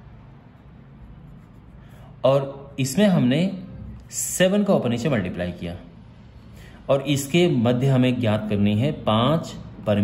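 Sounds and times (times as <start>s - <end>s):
pen scratching on paper: 0.6s - 2.0s.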